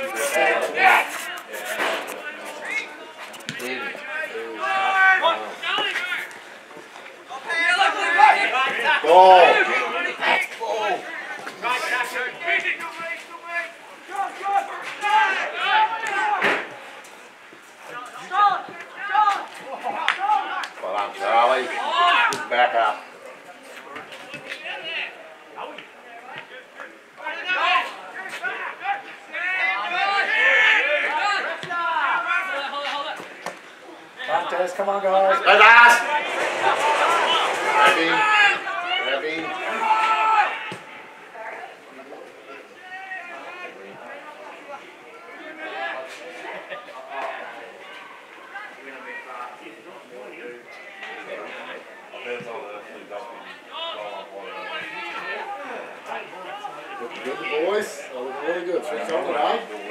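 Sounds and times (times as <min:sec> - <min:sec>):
people shouting and calling out: 0:00.0 - 0:59.9.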